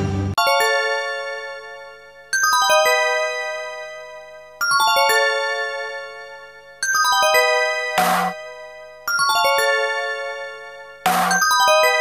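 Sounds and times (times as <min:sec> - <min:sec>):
bell-like chimes descending runs: 0:11.1 - 0:12.0.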